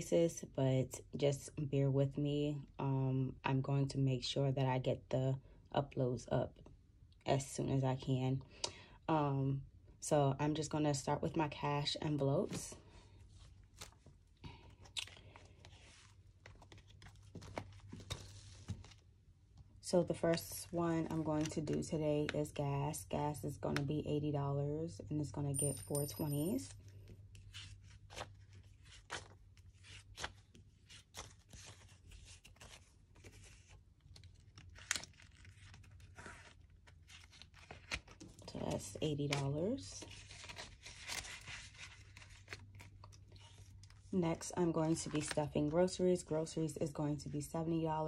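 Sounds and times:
plastic envelopes rustling: 12.4s - 22.6s, 26.9s - 44.1s, 44.7s - 46.3s.

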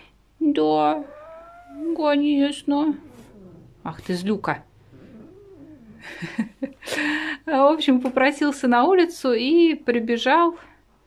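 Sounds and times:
cat grumbling: 0.8s - 6.6s.

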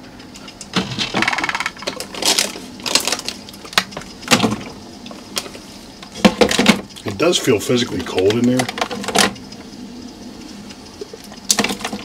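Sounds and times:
plastic bottles knocking and crinkling: 0.7s - 4.8s, 6.2s - 7.2s.

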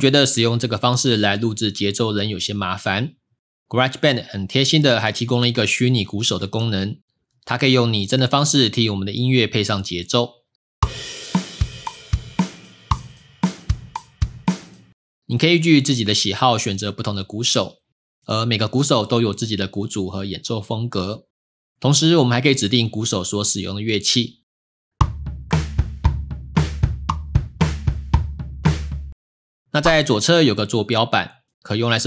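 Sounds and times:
cymbal crash: 10.8s - 14.9s
drum kit beat: 10.8s - 15.0s, 25.0s - 29.2s.

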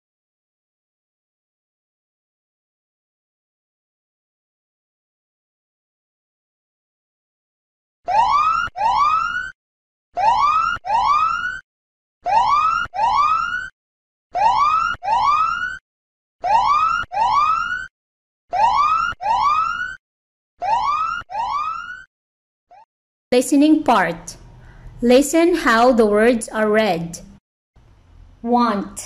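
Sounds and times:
siren-like alarm whoop: 8.1s - 9.6s, 10.2s - 11.6s, 12.2s - 13.7s, 14.4s - 15.8s, 16.4s - 17.9s, 18.5s - 20.0s, 20.6s - 22.1s.

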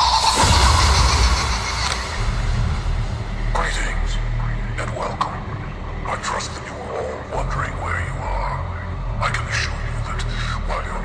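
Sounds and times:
hiss-like noise wash: 0.0s - 7.7s
heavy low bass rumble: 0.0s - 11.0s.

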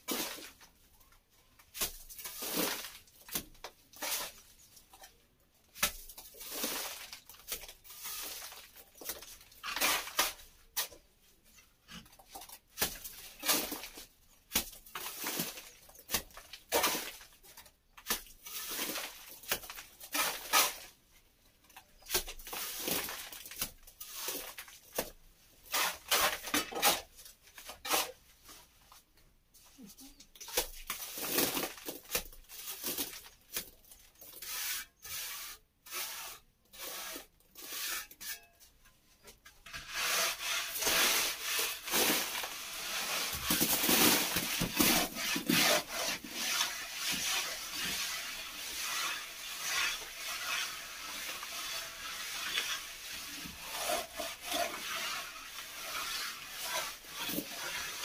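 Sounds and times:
trowel scraping plaster on wall: 1.7s - 21.0s, 21.9s - 28.6s, 30.4s - 38.6s, 39.5s - 58.0s.

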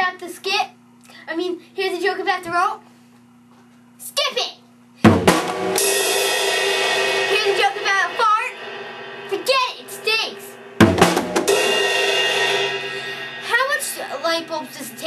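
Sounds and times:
drum hit: 5.0s - 15.0s
ringing cymbal crash: 5.1s - 15.0s.

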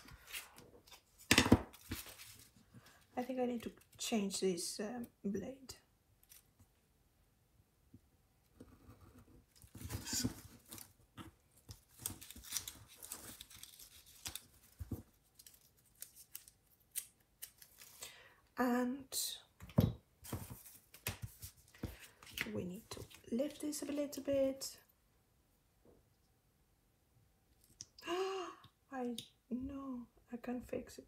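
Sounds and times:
tape being peeled and torn: 6.2s - 6.5s, 9.6s - 18.0s.

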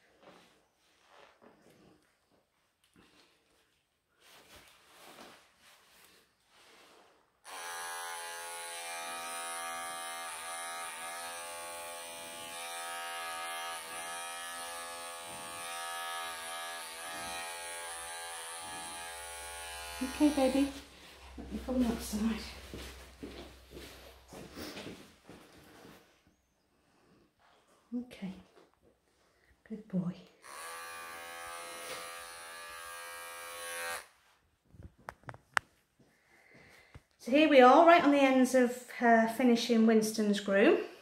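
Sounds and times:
electric clippers buzzing: 7.4s - 22.0s, 30.4s - 34.1s.

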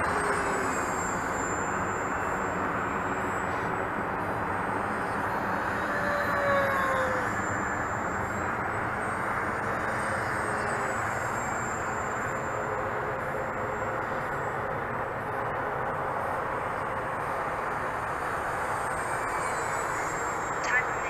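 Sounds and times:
model aircraft motor whine: 0.0s - 15.8s, 16.5s - 20.6s.

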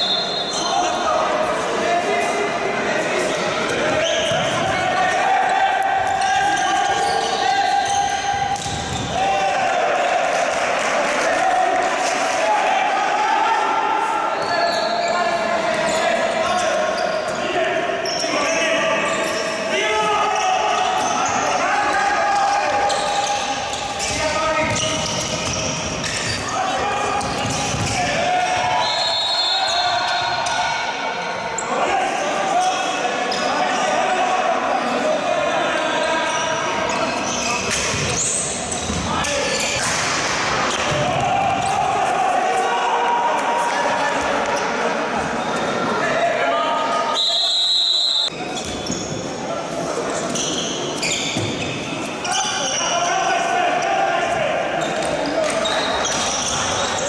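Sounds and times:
high whistle: 0.0s - 0.8s, 28.8s - 30.4s, 47.1s - 48.4s
ball bouncing on court: 8.3s - 9.2s, 27.2s - 28.1s
people shouting: 40.7s - 44.0s.

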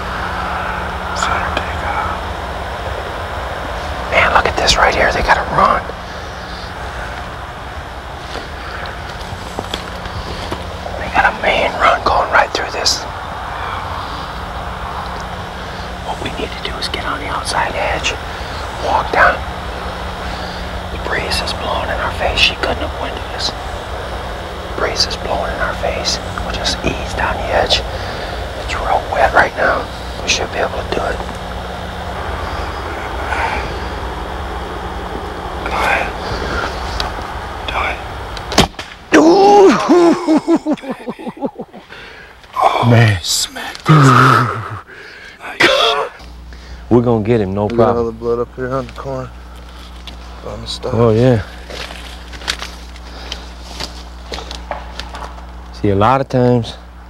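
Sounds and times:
steady low hum: 0.0s - 57.0s
corn stalks rustling and crackling: 51.5s - 55.4s.

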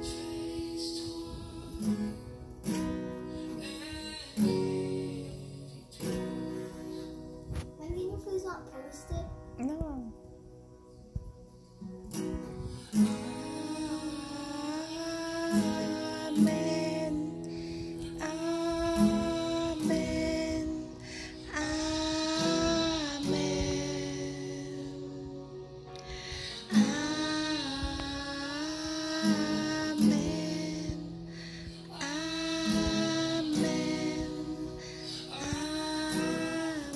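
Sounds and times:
acoustic guitar strummed slowly: 0.0s - 36.9s.

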